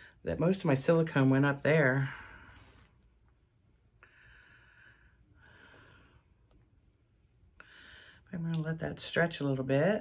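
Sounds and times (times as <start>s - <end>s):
faint breaths: 3.9s - 6.6s, 7.5s - 8.3s.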